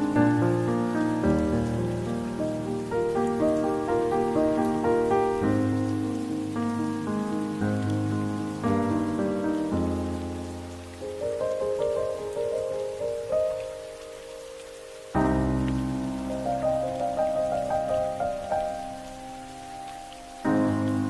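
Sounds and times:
slow soft instrumental music: 0:00.0 - 0:21.0
steady rain: 0:00.0 - 0:21.0.

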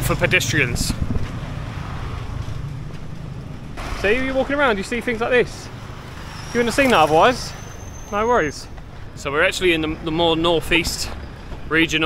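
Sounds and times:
wind buffeting microphone: 0:00.0 - 0:03.8
motorbike passing: 0:00.0 - 0:12.0
street traffic: 0:00.0 - 0:12.0.

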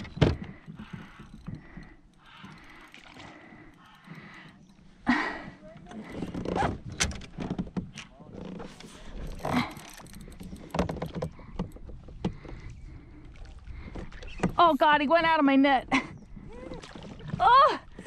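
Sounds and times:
woman's strained cries: 0:17.4 - 0:18.0.

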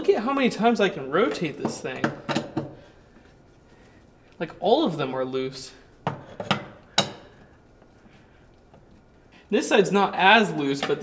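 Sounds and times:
quiet handling noise: 0:00.0 - 0:11.0.

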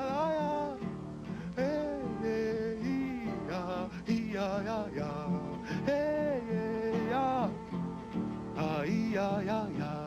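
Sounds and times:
man singing sliding notes: 0:00.0 - 0:07.8, 0:08.5 - 0:10.0
acoustic guitar: 0:00.0 - 0:10.0.

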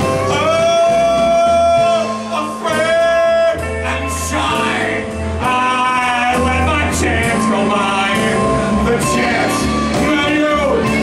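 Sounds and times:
electric guitar and bass: 0:00.0 - 0:11.0
man singing long notes: 0:00.0 - 0:11.0.

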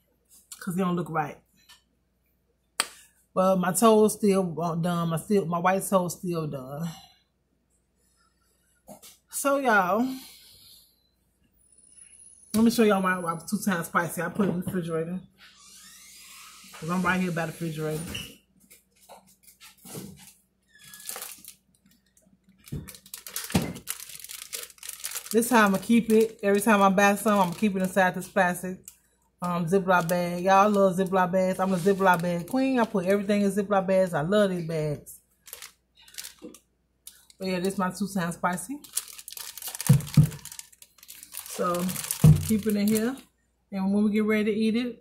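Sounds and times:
plastic bag crinkling: 0:20.7 - 0:33.5, 0:35.4 - 0:43.2.

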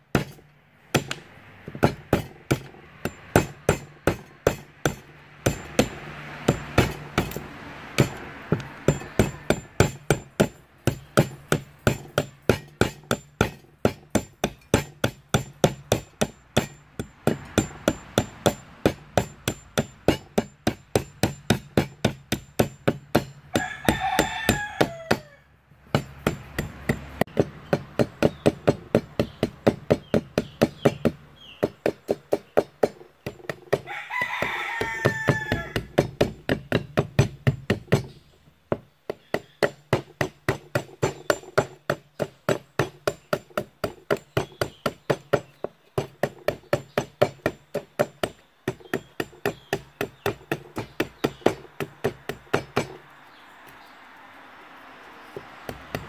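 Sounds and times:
machete chopping wood: 0:00.1 - 0:53.0, 0:55.4 - 0:56.0
rooster crowing: 0:23.5 - 0:25.5, 0:33.8 - 0:36.0.

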